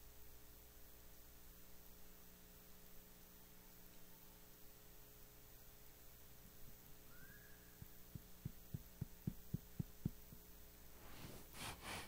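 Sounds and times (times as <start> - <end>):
faint steady hum: 0.0 - 12.0
soft muffled low thumps: 7.8 - 10.5.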